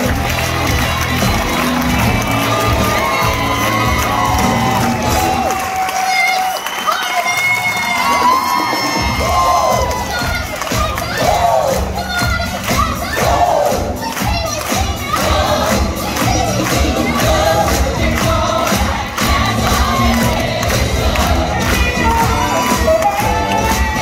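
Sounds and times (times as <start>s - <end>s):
audience cheering: 0.0s - 13.9s, 19.3s - 24.0s.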